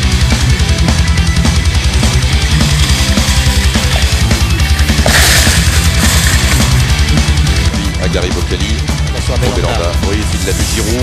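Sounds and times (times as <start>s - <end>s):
heavy metal rock music: 0.0s - 11.0s
cymbal crash: 5.0s - 6.8s.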